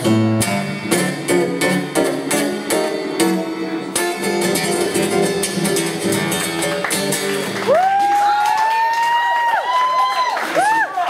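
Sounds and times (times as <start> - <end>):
acoustic guitar chord ringing: 0.0 - 7.7
audience applause: 6.3 - 11.0
high-pitched cheer: 7.4 - 11.0.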